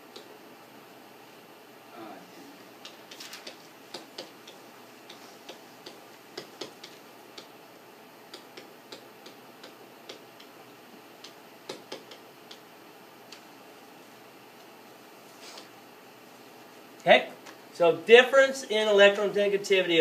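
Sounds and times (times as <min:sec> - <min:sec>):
stylus tapping on tablet screen: 0:02.8 - 0:07.5, 0:08.3 - 0:10.6, 0:11.2 - 0:12.6.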